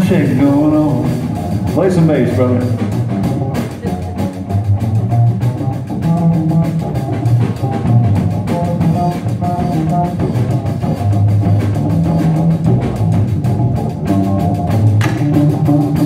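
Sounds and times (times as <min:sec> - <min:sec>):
drum kit beat: 0:00.0 - 0:16.0
plucked upright bass notes: 0:00.0 - 0:16.0.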